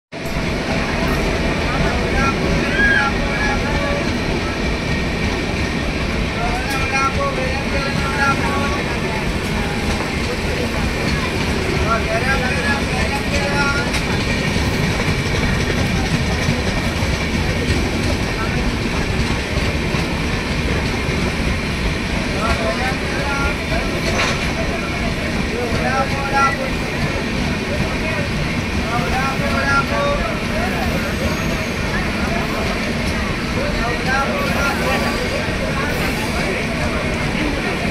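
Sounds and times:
train rumbling: 0.1 - 37.9
indistinct voices: 0.2 - 37.9.

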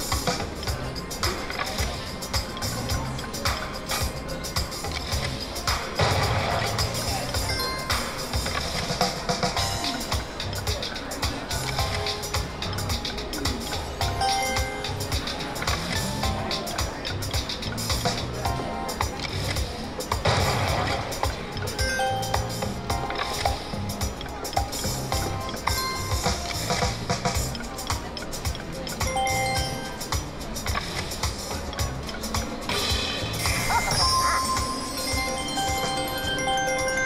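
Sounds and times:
casino background noise: 0.0 - 37.0
slot machine electronic music: 0.0 - 37.0.

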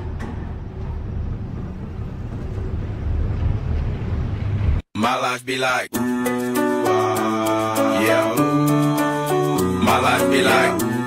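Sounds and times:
low rumbling noise: 0.0 - 4.9.

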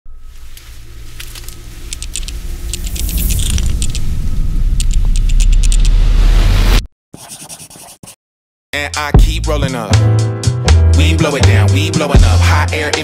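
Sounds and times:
low rumble: 0.1 - 6.9.

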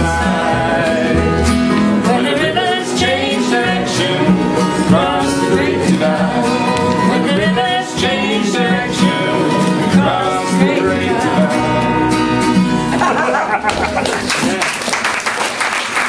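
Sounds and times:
acoustic guitars and double bass: 0.0 - 14.8.

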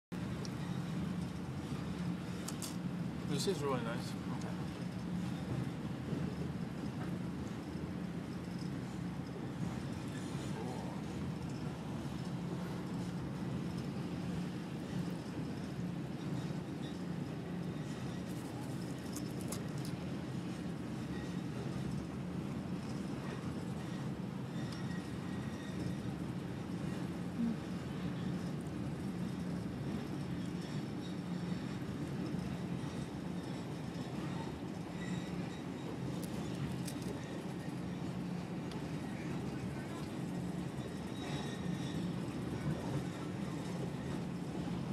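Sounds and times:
train rumbling from inside carriage: 0.1 - 44.9.

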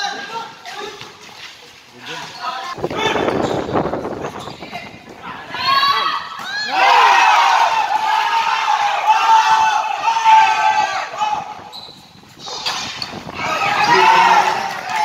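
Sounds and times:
crowd shouting and cheering: 4.9 - 15.0.

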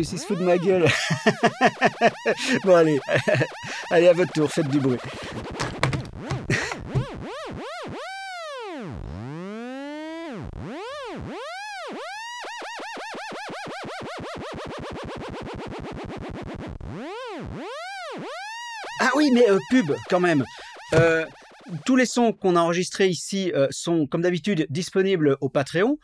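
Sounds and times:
synthesizer swooping chirps: 0.0 - 5.6, 16.9 - 22.2.

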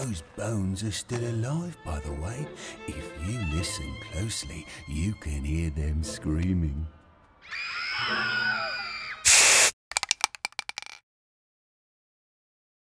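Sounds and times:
loud burst of hissing noise: 9.2 - 9.8
quick run of clicks: 9.9 - 11.0.

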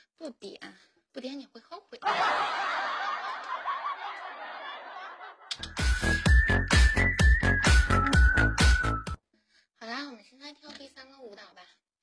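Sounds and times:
crowd laughing: 2.0 - 5.6
electronic dance music: 5.5 - 9.2.

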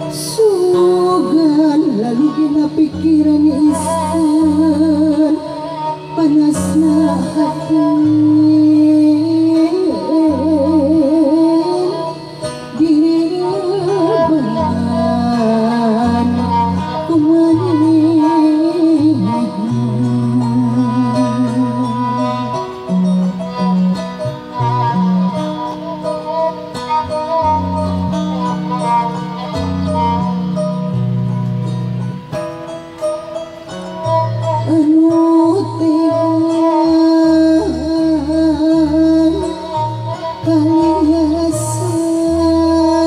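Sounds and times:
violin melody with vibrato: 0.0 - 43.0
woman singing ornamented melody: 0.0 - 43.0
zithers plucking low notes: 0.0 - 43.0.

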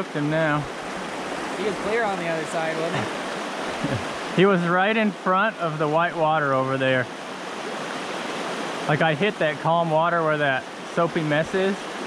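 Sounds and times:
river rapids rushing: 0.0 - 12.0
person speaking: 1.6 - 3.2.

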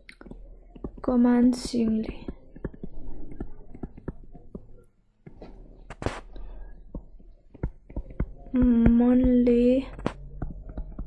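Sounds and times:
stylus tapping on touchscreen: 0.0 - 11.0.

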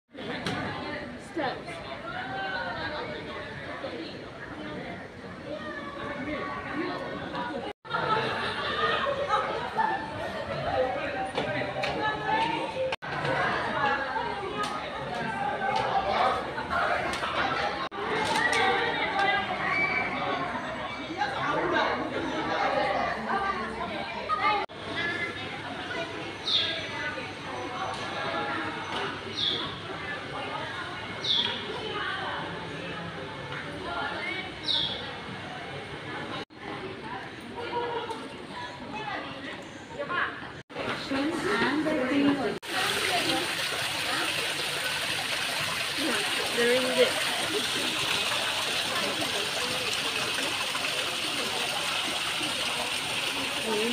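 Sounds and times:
indistinct chatter of people: 0.1 - 53.9
water splashing into a pool: 42.6 - 53.9.

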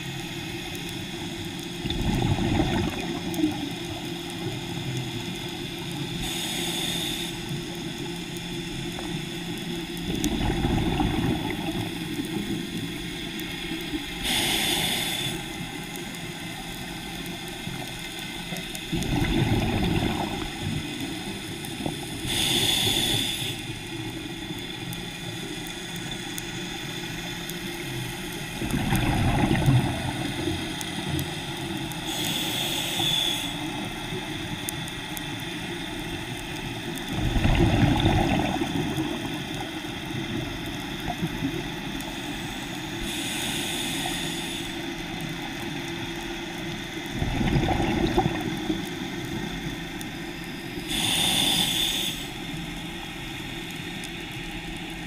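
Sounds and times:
exhaled bubbles underwater: 1.6 - 6.5, 9.0 - 15.7, 17.6 - 23.2, 28.6 - 32.2, 36.3 - 42.2, 46.6 - 51.0
regulator inhale hiss: 4.4 - 10.2, 11.5 - 19.0, 20.6 - 25.9, 30.0 - 36.5, 42.0 - 46.7, 50.0 - 54.8
steady background hiss: 29.5 - 37.3, 38.0 - 47.6, 48.2 - 55.0.

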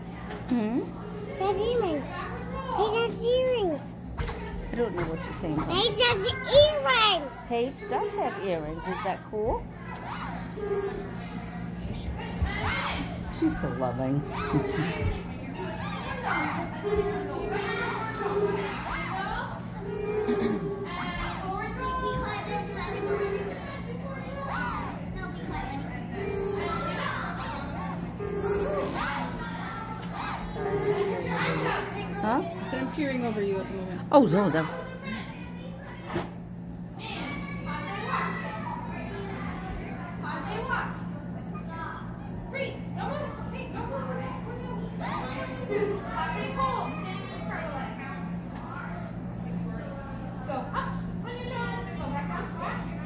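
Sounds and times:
steady low hum: 0.0 - 53.0
young children chattering: 0.0 - 53.0
child's high rising cry: 15.8 - 25.0, 26.2 - 31.8.

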